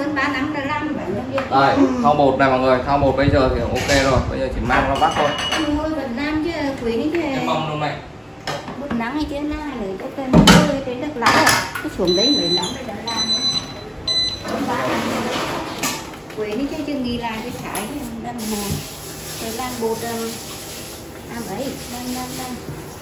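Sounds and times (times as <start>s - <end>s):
voices talking: 8.8s - 18.8s.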